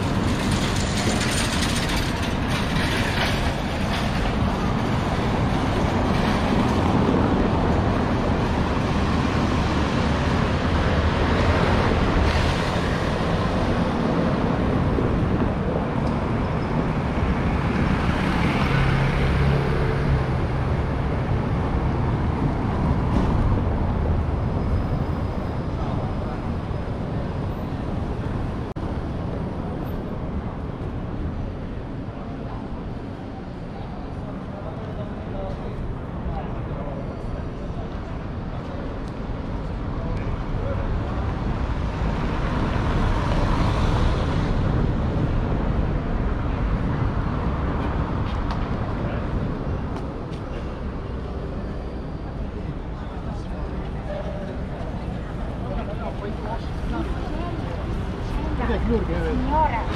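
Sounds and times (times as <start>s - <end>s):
low rumble of traffic: 0.0s - 59.9s.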